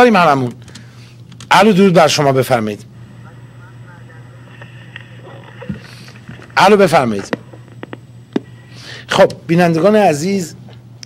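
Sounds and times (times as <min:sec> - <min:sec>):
telephone line hum: 0:00.0 - 0:09.2.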